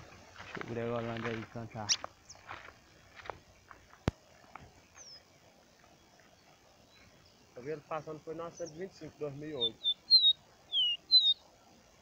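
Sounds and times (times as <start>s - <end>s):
faint ticks: 0.5s - 7.2s
faint high bird call: 9.5s - 11.4s.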